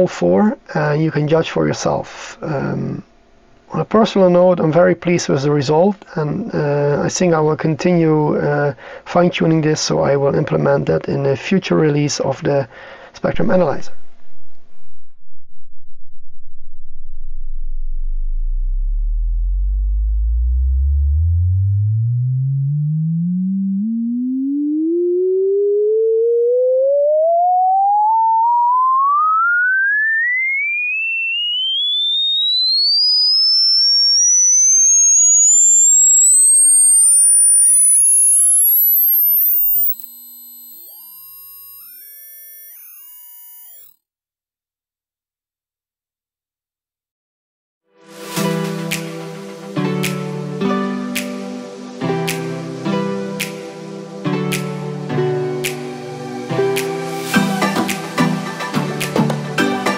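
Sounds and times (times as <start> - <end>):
rising sine-wave test tone: 14.3 - 44.0.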